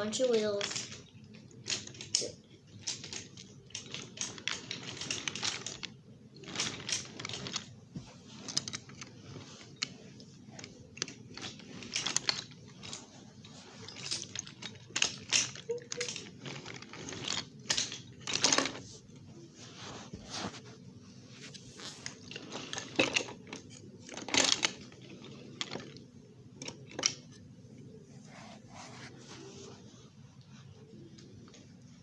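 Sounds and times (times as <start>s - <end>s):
toy train wheels clacking on track: 13.8s - 18.8s.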